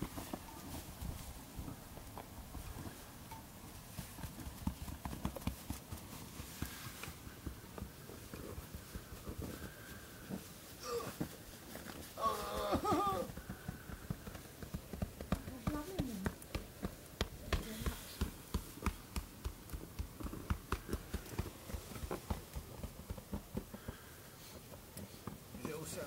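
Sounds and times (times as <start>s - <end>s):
person calling out: 12.2s - 13.3s.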